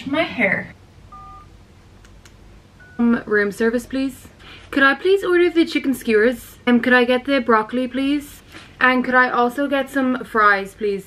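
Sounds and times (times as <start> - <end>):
two-tone telephone keypad beep: 1.1 - 1.5, 2.8 - 3.0.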